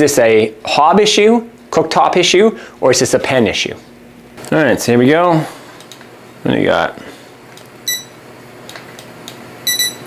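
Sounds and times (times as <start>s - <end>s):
thermometer beeping: 7.8s - 8.2s, 9.6s - 10.0s.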